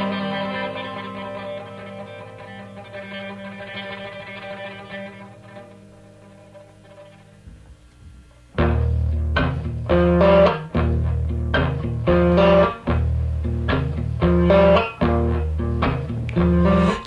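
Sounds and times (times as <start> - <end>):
guitar repeating phrase: 8.6 - 17.0
steady bass line: 8.6 - 17.0.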